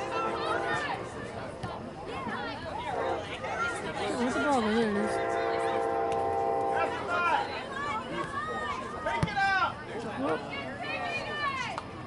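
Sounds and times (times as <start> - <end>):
horn long steady note: 0.0 - 1.0, 2.8 - 7.4
spectators talking: 0.0 - 12.0.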